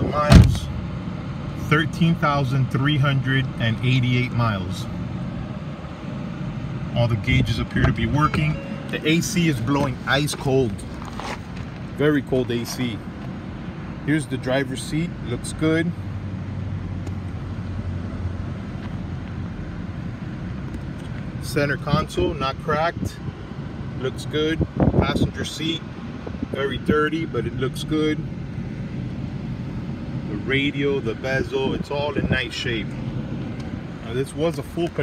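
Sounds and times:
car engine idling: 0.0s - 35.0s
air conditioning fan rushing: 16.0s - 35.0s.

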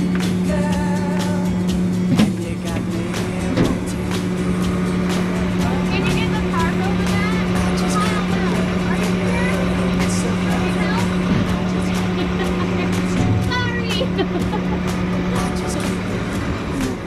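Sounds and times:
tractor engine running: 0.0s - 17.0s.

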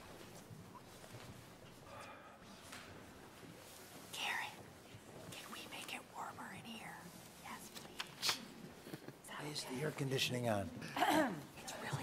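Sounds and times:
people whispering and murmuring: 0.6s - 12.0s.

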